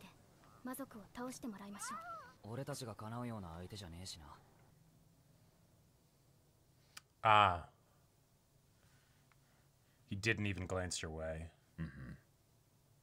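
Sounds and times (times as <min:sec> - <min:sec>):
faint cartoon dialogue: 0:00.5 - 0:02.6, 0:07.2 - 0:07.8.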